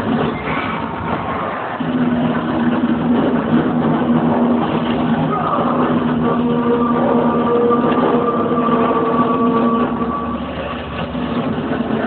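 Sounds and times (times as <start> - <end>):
low drone over loudspeakers: 0.0 - 12.0.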